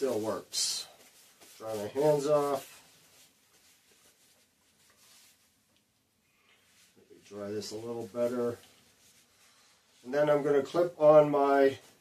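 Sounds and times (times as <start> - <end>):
paper towel rustling: 0.0 - 12.0.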